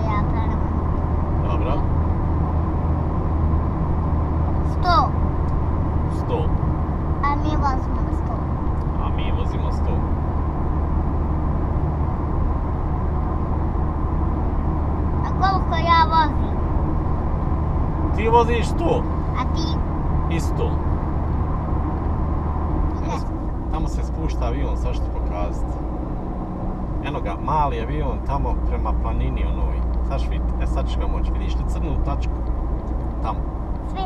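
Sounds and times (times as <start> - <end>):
voices: 0.0 - 0.8, 1.4 - 1.9, 4.6 - 5.2, 7.2 - 10.1, 15.2 - 16.6, 18.1 - 20.8, 23.0 - 25.7, 27.0 - 32.3
car cabin road and engine noise: 0.0 - 34.0.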